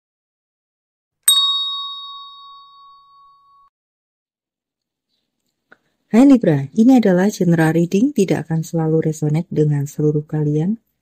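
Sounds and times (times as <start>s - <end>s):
bell chime ringing: 1.3s - 3.7s.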